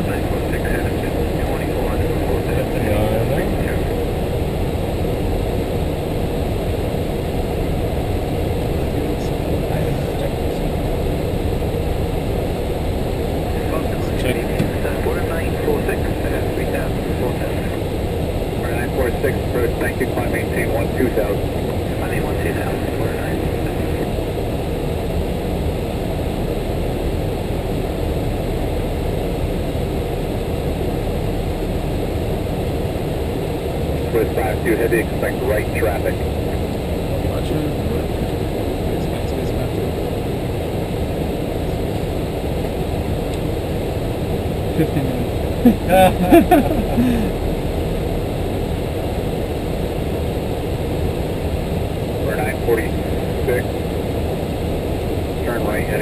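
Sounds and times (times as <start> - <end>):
faint muffled voices: 0.0 - 4.0, 8.7 - 11.2, 13.4 - 17.9, 18.6 - 24.2, 34.0 - 40.6, 44.7 - 47.5, 52.1 - 53.8, 55.4 - 56.0
aircraft cockpit rushing noise: 0.0 - 56.0.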